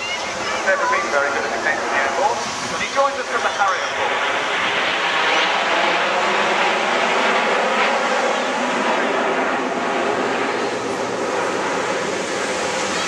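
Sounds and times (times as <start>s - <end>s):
jet engines passing overhead: 0.0s - 13.0s.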